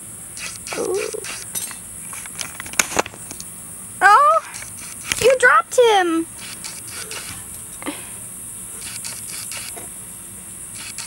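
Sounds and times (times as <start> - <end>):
steady high hiss: 0.0 - 11.0
sharp clicks: 8.8 - 9.8, 10.8 - 11.0.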